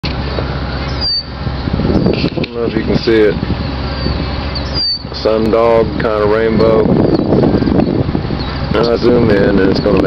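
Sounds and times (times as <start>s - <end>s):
vehicle engine idling: 0.0s - 10.0s
high-pitched chirp: 0.8s - 1.4s, 3.9s - 5.1s.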